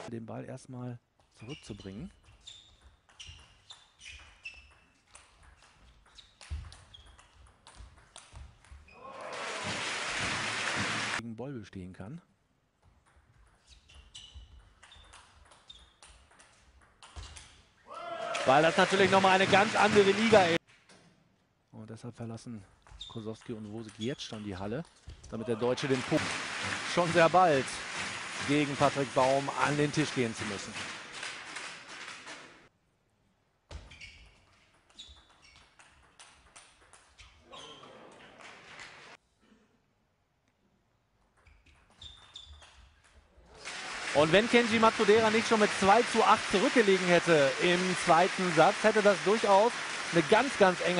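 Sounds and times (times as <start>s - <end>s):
short high squeaks: 1.4s - 5.0s, 13.6s - 16.0s, 41.4s - 42.8s.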